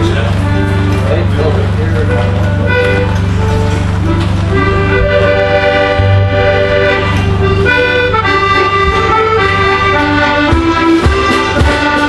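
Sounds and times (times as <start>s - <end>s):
accordion band playing: 0.0s - 12.0s.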